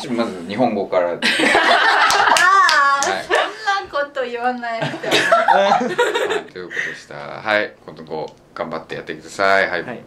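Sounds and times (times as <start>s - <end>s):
group laughing loudly: 1.2s - 3.6s, 4.8s - 6.5s
hand claps: 2.0s - 3.5s.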